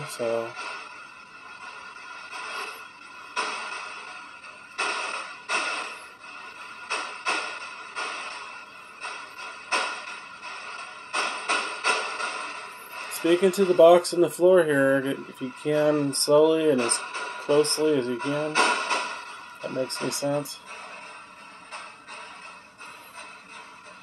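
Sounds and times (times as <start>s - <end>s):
static and radio fragments: 0.0s - 24.0s.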